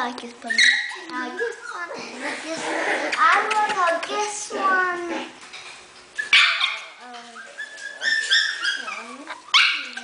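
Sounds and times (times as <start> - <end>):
puppies whimpering and yipping: 0.5 - 2.6, 6.1 - 10.0.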